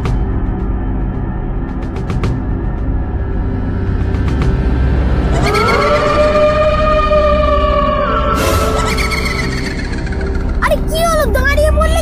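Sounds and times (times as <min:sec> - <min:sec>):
siren-like rising tone: 0:05.1 - 0:10.4.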